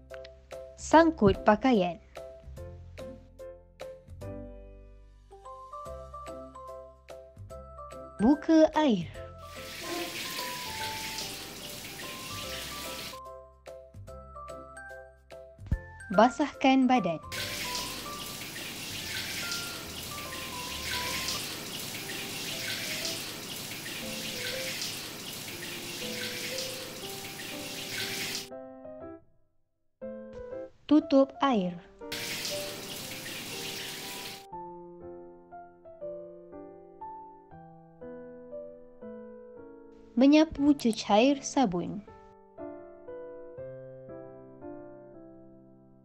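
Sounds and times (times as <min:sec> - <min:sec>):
soft background music: 0:00.0 - 0:29.2, 0:30.0 - 0:46.0
shower water spraying: 0:09.4 - 0:13.2, 0:17.3 - 0:28.5, 0:32.1 - 0:34.5.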